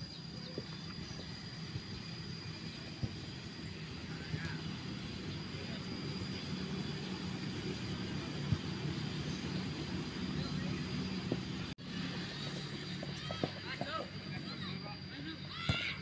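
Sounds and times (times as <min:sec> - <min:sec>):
low engine drone: 0:00.0 - 0:15.6
outdoor background noise: 0:00.0 - 0:16.0.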